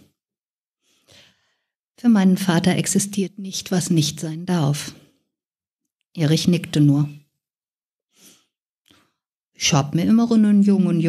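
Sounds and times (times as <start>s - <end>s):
woman breathing in: 0.8s - 1.8s.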